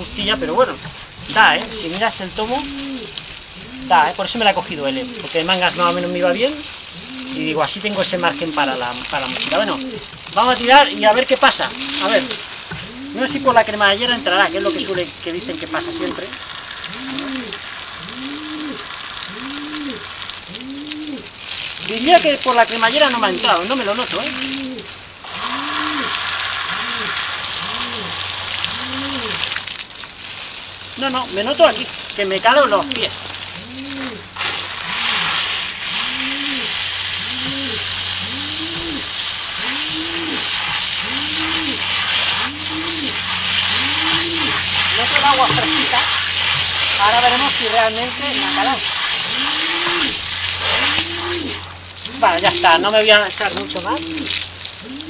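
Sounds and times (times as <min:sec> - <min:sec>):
hose spraying water on a jacket: 0:00.0 - 0:55.0
man humming: 0:28.8 - 0:29.4.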